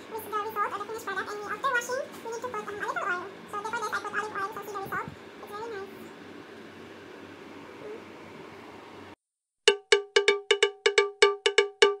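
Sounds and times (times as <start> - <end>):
faint room hum: 0.0 - 9.2
cowbell-like notes: 9.7 - 12.0.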